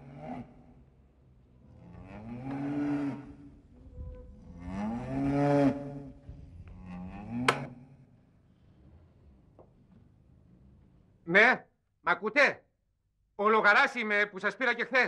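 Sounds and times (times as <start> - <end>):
cow mooing: 4.3 - 6.1.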